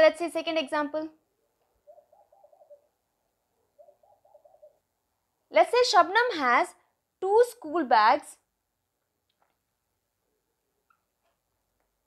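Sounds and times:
faint bird call: 1.8 - 3.0.

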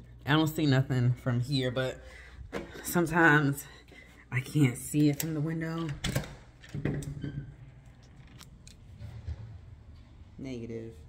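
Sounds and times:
door lock and latch clicks: 5.0 - 7.2.

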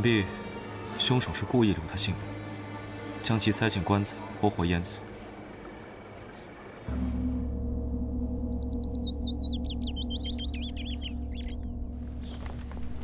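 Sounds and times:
songbird chirping: 1.0 - 13.0
deep gong ringing: 6.9 - 12.9.

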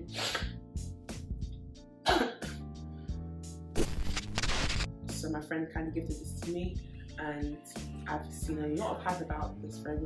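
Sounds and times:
background music: 0.0 - 10.0
woman coughing: 2.0 - 2.6.

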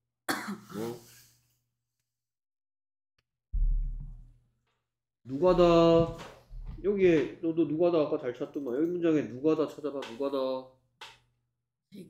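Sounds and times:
person coughing: 0.3 - 1.0.

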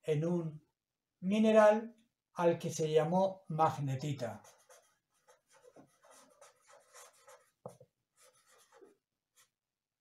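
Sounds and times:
pen scratching on paper: 4.4 - 9.6.

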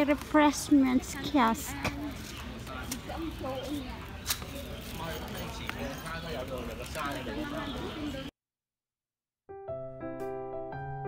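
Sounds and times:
people talking: 0.0 - 8.3.

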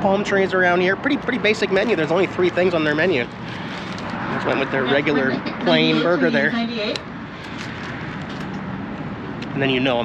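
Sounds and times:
road traffic hum: 0.0 - 10.0.

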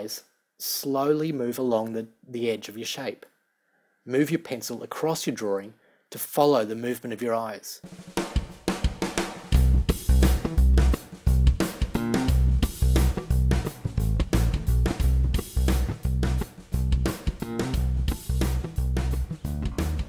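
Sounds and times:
music with drum beat and bass: 7.8 - 20.0.

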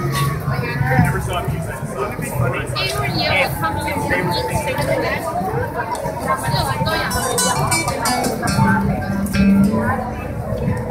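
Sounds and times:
crowd chatter: 0.0 - 10.9
live guitar music: 7.0 - 10.9.

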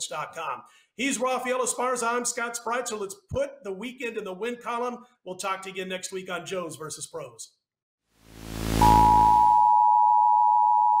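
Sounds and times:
steady pure beep: 8.3 - 11.0.

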